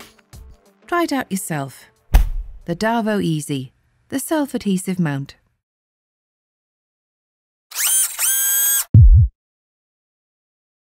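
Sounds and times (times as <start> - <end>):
deep bass hit: 2.1 - 2.7, 9.0 - 9.3.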